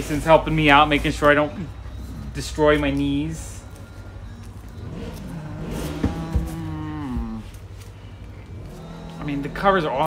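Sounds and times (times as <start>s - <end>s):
motor vehicle engine: 0.0s - 10.0s.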